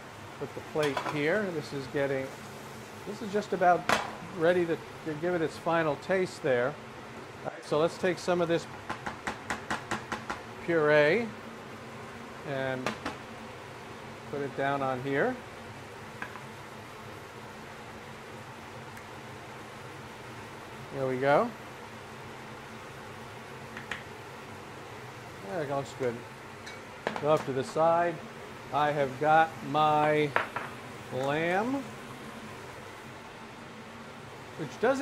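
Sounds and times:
low hum and hiss: 0.0s - 35.0s.

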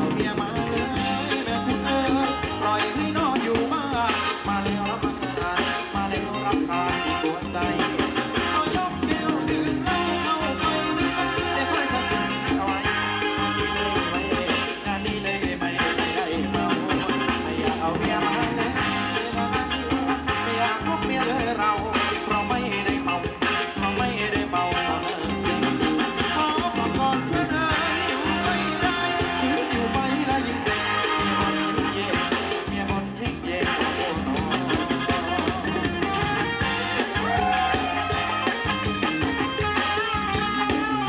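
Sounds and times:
live band playing dance music: 0.0s - 41.0s
steady drum beat: 0.0s - 41.0s.

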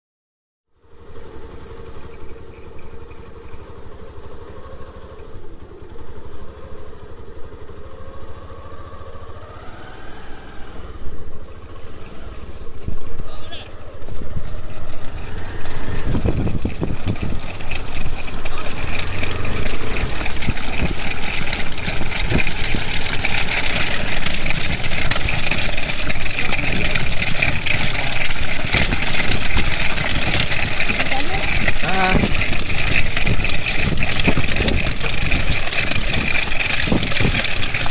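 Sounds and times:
motorcycle engine running: 0.8s - 37.9s
racing cart rattling: 0.8s - 37.9s
pounding of hooves: 11.9s - 37.9s.

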